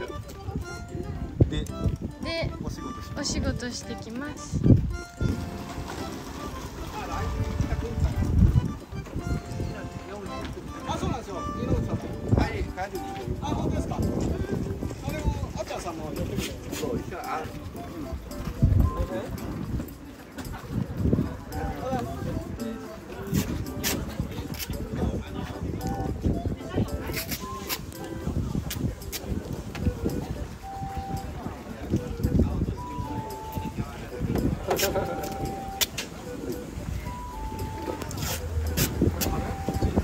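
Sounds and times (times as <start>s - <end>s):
people talking: 0.0s - 4.8s, 6.0s - 40.0s
wind rumble on microphone: 0.0s - 40.0s.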